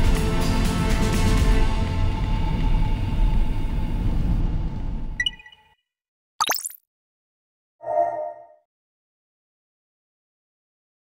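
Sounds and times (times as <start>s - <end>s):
short steady tones effect: 7.8s - 8.6s.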